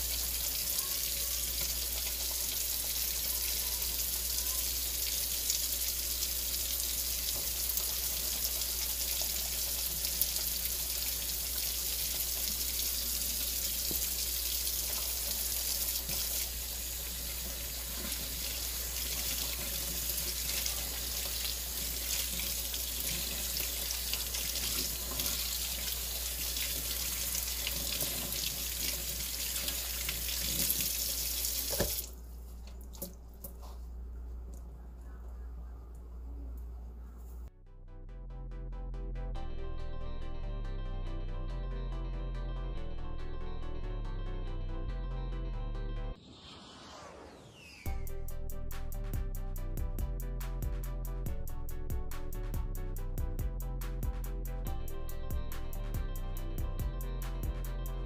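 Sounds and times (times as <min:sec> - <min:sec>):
faucet running into metal sink: 0:00.1 - 0:32.1.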